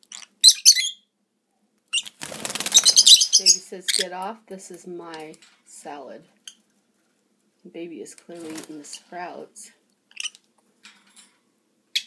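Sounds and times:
lovebirds squawking: 1.9 - 4.2.

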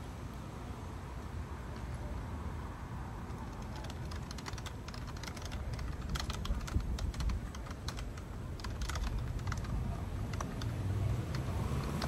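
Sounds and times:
keyboard key clicks: 3.3 - 12.0.

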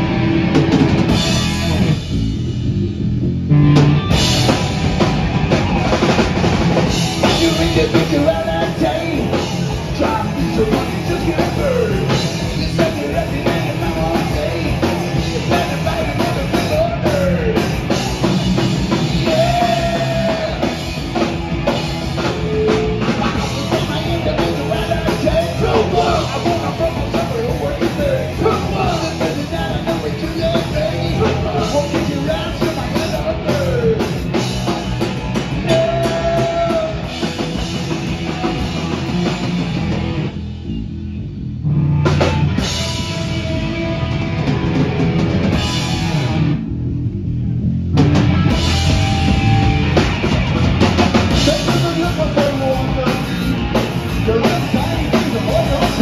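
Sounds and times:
bass guitar: 0.0 - 56.0
drum kit: 0.0 - 56.0
electric guitar: 0.0 - 56.0
punk band playing live: 0.0 - 56.0.

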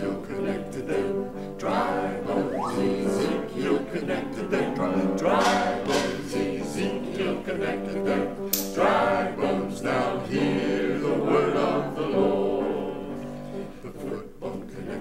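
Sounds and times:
choir singing held chords: 0.0 - 15.0.

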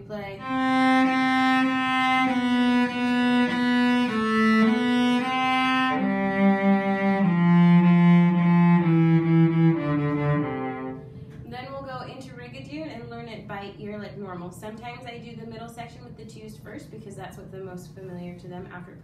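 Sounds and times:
bowed cello melody: 0.2 - 11.2.

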